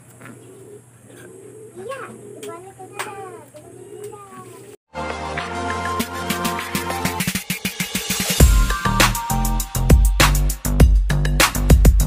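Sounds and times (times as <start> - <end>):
pigeon cooing: 0.0 - 4.8.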